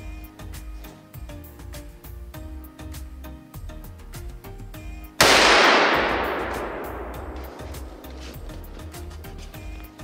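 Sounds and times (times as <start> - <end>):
background music with steady beat: 0.0 - 10.0
pistol shot echoing: 5.2 - 8.0.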